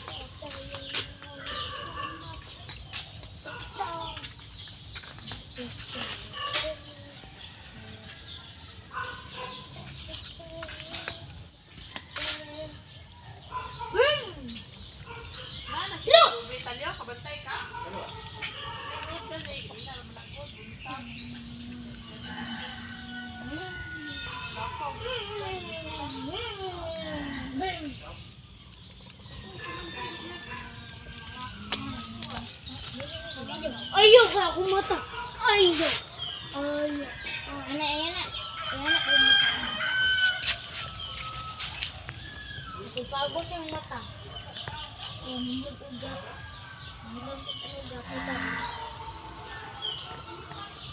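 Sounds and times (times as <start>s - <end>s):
insects chirping: 0.0s - 50.9s.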